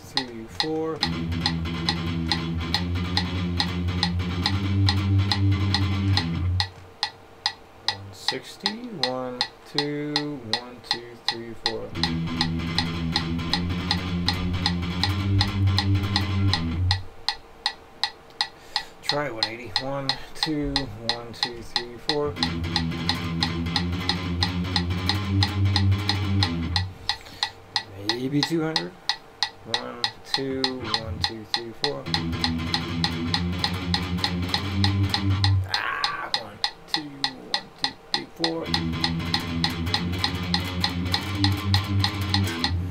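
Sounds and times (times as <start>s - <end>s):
palm-muted electric guitar riff: 0.0s - 6.8s, 7.8s - 17.2s, 18.6s - 28.9s, 29.6s - 42.9s
metronome clicking: 0.0s - 42.9s.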